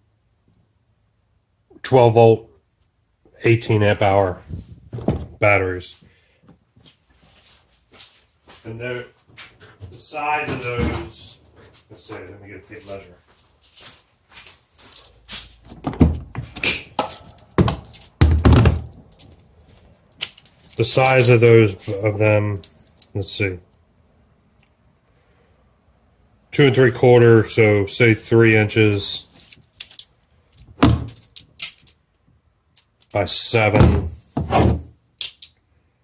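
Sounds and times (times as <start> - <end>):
objects thudding and knocking: 4.4 - 5.4, 9.6 - 11.3, 15.6 - 19.1, 30.6 - 31.4, 33.7 - 34.9
tape measure clattering: 29.3 - 30.1.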